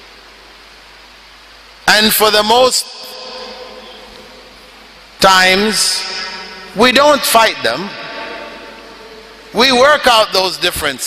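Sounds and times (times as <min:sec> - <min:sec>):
man's voice echoing in a hall: 0:01.8 - 0:11.0.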